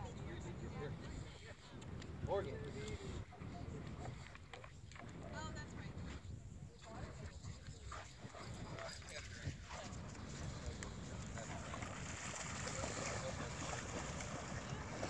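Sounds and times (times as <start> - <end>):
faint distant voices: 0.0 - 15.0
wind rumbling on microphone: 0.0 - 15.0.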